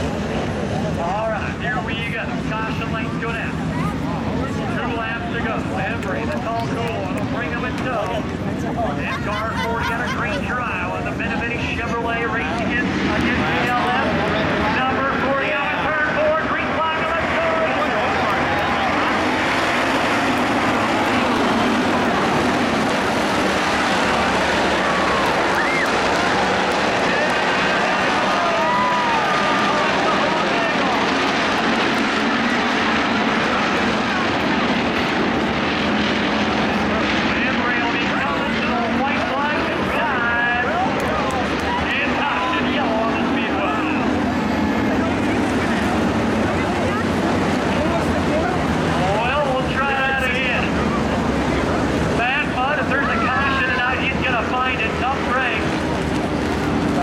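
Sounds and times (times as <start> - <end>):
crowd voices: 0.0 - 57.0
race car engines passing: 0.0 - 57.0.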